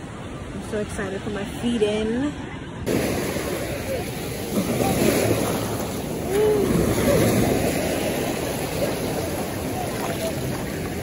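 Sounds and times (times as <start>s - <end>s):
small waves washing ashore: 0.0s - 11.0s.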